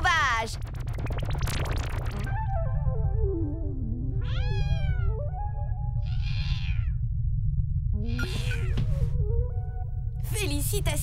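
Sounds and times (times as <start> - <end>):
cartoon cat meowing: 4.2 - 5.2, 6.0 - 7.0, 8.0 - 8.8
background music: 7.9 - 11.0.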